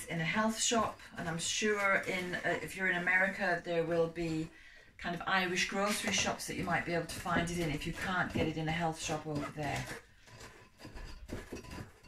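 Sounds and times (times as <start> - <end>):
spoon scraping metal sieve: 0.0 - 12.0.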